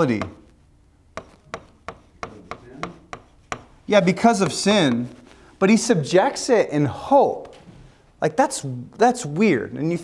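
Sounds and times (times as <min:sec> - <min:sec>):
pen tapping on glass: 0:01.2 - 0:03.7.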